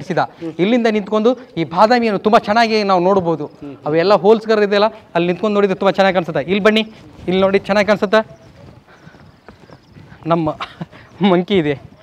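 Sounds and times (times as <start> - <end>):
footsteps on stone paving: 0.0 - 12.0.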